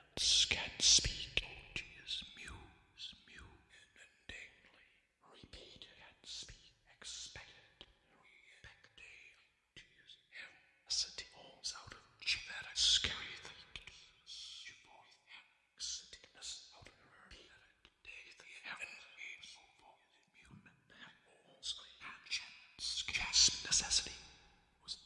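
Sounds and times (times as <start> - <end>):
processed whispered voice fragments: 0.0 - 3.6, 21.2 - 25.0.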